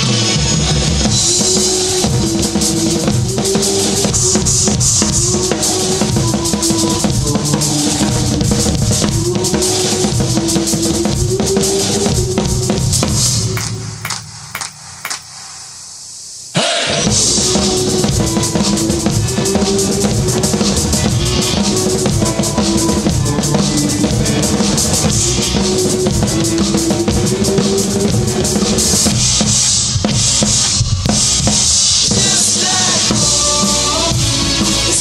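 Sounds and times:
drum kit and rock band: 0.0 - 16.0, 16.6 - 35.0
cymbal wash: 9.1 - 33.1
snare and bass drum hits: 13.0 - 15.8
hand claps: 13.6 - 15.5.

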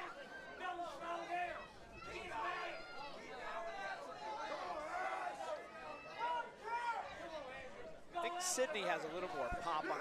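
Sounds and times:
crowd shouting and chattering: 0.0 - 10.0.

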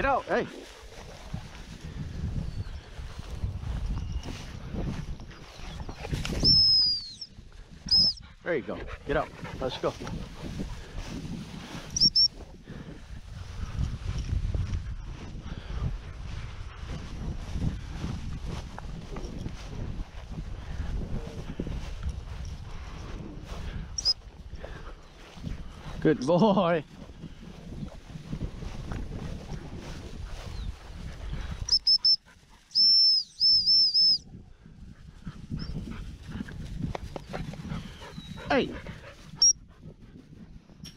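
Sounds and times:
walking through tall dry grass: 0.0 - 8.4, 9.0 - 33.4, 34.2 - 40.8
wind on microphone: 0.0 - 40.9
high whistle toots: 12.0 - 12.3, 31.7 - 32.2, 32.8 - 34.2.

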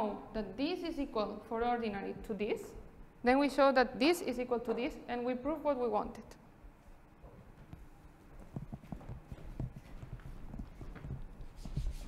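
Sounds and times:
footsteps on hard floor: 7.2 - 12.0.

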